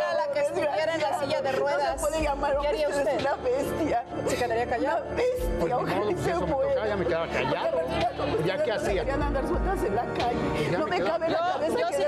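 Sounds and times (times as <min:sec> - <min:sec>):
background music: 0:00.0 - 0:12.0
people arguing: 0:00.0 - 0:12.0.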